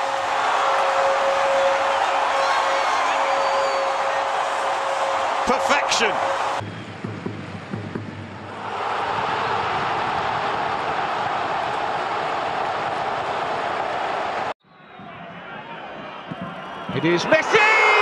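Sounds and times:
stadium crowd roaring: 0:00.0 - 0:18.0.

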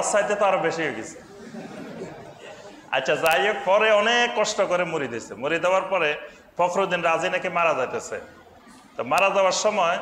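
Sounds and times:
murmur of voices: 0:00.0 - 0:03.7, 0:06.7 - 0:10.0.

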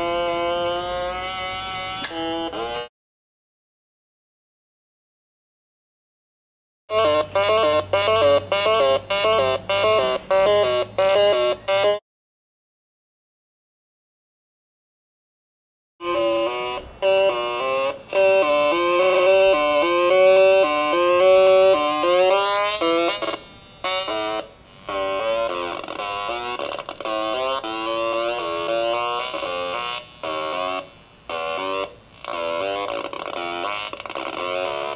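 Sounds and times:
buzzy stepping square-wave tone: 0:00.0 - 0:02.9, 0:06.9 - 0:12.0, 0:16.0 - 0:34.9.

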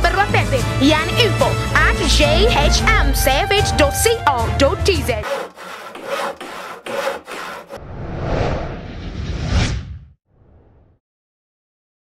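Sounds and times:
rhythmic rasping strokes: 0:01.0 - 0:07.8.

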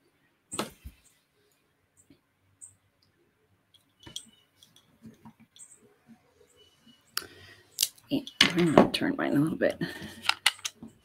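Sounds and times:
clicks of small pieces handled: 0:10.2 - 0:10.9.

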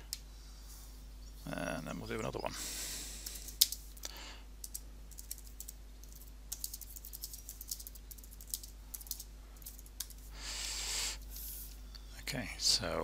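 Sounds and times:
computer keyboard typing: 0:03.3 - 0:03.8, 0:04.6 - 0:10.2.

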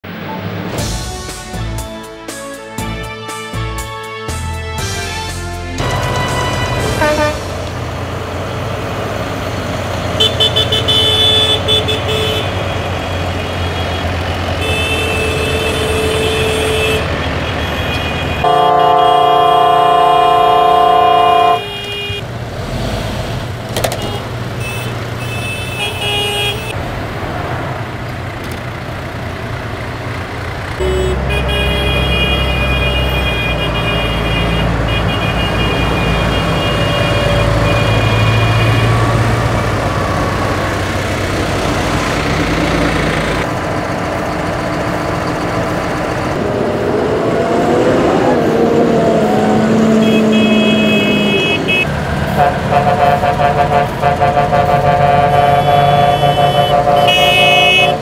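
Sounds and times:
diesel engines rumbling: 0:00.0 - 0:58.0
vehicle horn blast: 0:05.8 - 0:07.6, 0:10.2 - 0:22.2, 0:23.9 - 0:26.8, 0:30.8 - 0:39.3, 0:50.0 - 0:58.0.

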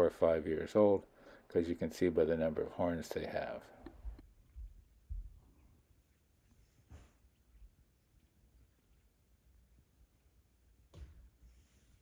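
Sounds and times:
soft low bumps: 0:03.8 - 0:05.7.

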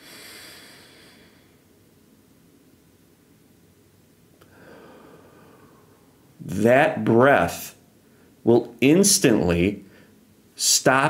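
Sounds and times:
man breathing in through nose: 0:00.0 - 0:01.6, 0:04.5 - 0:06.0.

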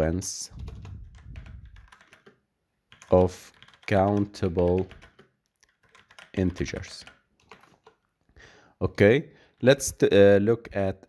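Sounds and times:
computer keyboard typing: 0:00.6 - 0:08.0.

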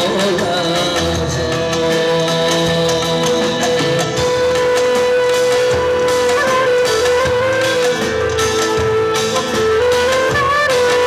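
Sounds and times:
drum kit: 0:00.0 - 0:11.0
hand drum: 0:00.0 - 0:11.0
keyboard accompaniment: 0:00.0 - 0:11.0
clarinet long held note: 0:04.3 - 0:11.0.

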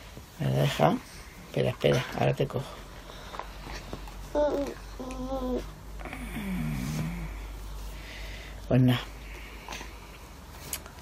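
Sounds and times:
person humming low: 0:04.4 - 0:07.5.

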